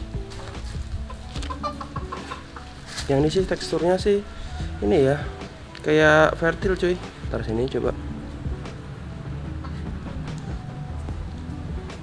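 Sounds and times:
quiet background music: 0:00.0 - 0:12.0
chickens clucking: 0:00.3 - 0:05.2, 0:09.4 - 0:10.6.

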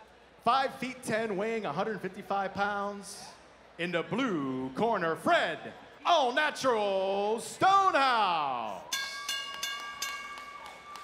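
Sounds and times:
crowd clapping: 0:09.5 - 0:11.0.

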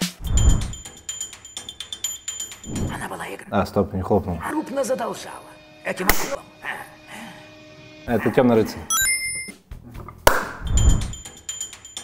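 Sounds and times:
sharp hand clap: 0:10.3 - 0:10.6.

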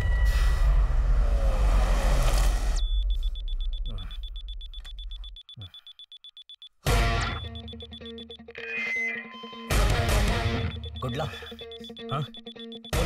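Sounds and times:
digital wristwatch beeping: 0:02.8 - 0:09.2, 0:10.3 - 0:13.0.

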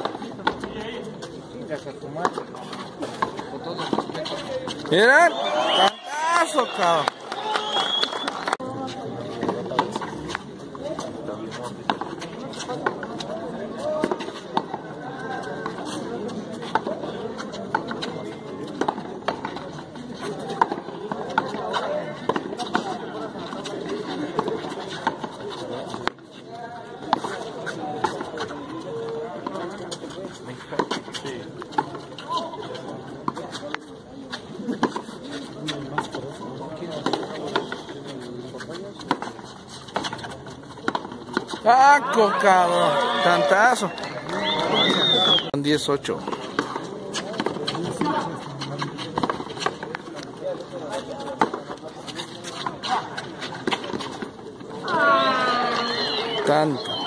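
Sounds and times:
spectators chattering: 0:00.0 - 0:57.0.

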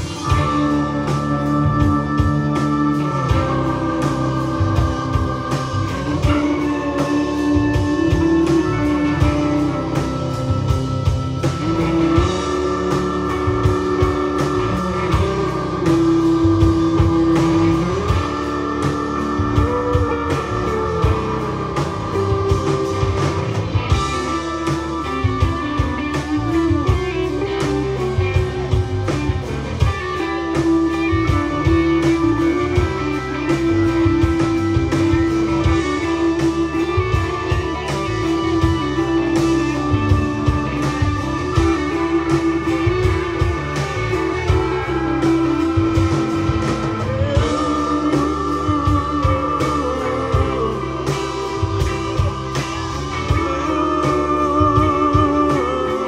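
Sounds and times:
drum kit beat: 0:00.0 - 0:56.0
electric guitars: 0:00.0 - 0:56.0
lead guitar held notes: 0:00.0 - 0:56.0.

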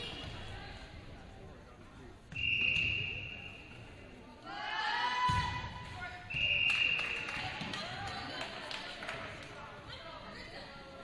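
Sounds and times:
crowd and player chatter echoing: 0:00.0 - 0:11.0.

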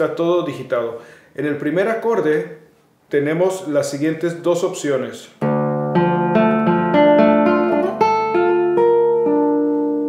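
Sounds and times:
classical guitar arpeggio: 0:05.4 - 0:10.0.

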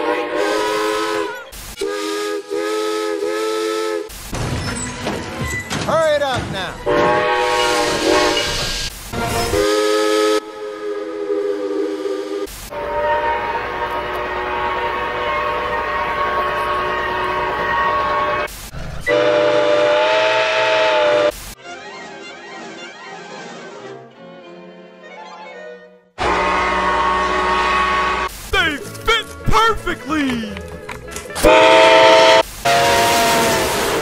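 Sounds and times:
steam locomotive whistle blasts: 0:00.0 - 0:04.1, 0:06.9 - 0:18.5, 0:19.1 - 0:21.4, 0:26.2 - 0:28.4, 0:31.4 - 0:34.0.

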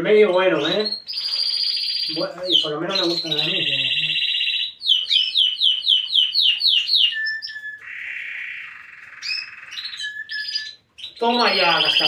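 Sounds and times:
canary singing: 0:00.0 - 0:12.0.

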